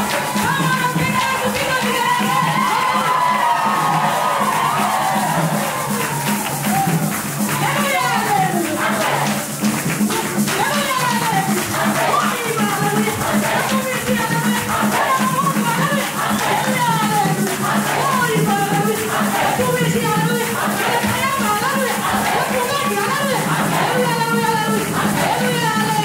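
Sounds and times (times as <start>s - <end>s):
woman singing amplified: 0.0s - 3.7s, 7.5s - 9.5s, 10.5s - 26.0s
bass and hand percussion beat: 0.0s - 26.0s
congregation singing: 0.0s - 26.0s.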